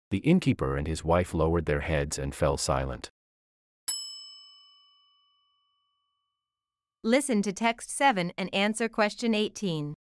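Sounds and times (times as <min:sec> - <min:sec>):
bell-like ding: 0:03.9 - 0:06.4.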